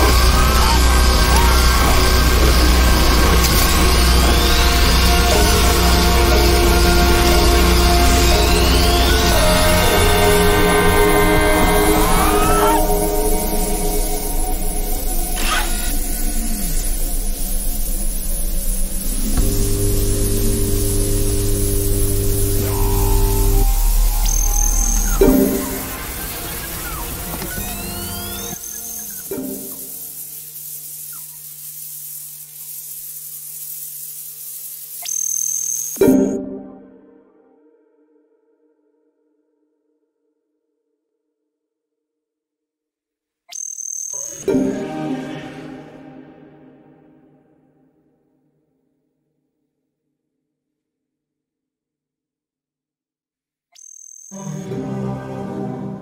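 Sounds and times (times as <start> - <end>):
low rumbling drone: 0.0 - 28.6
sustained electronic chord: 0.0 - 28.6, 44.3 - 47.9, 54.4 - 56.0
high steady tone over noise: 0.0 - 36.4
sustained synthesized chord: 44.3 - 47.9, 54.4 - 56.0.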